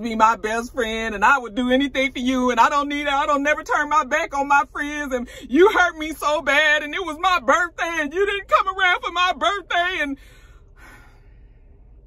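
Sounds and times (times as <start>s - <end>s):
woman speaking: 0.0s - 10.2s
faint low hum: 0.0s - 12.0s
breathy sigh: 10.2s - 11.5s.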